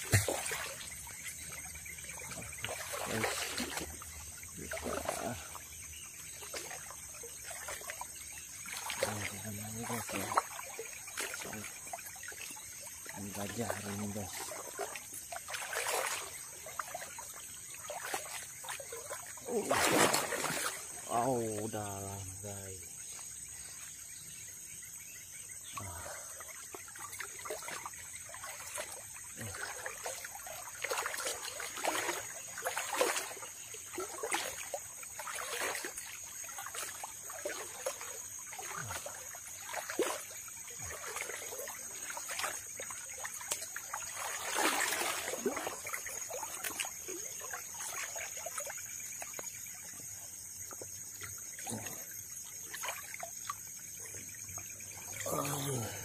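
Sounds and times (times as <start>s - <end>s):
water splashing around wading person: 0.0s - 56.0s.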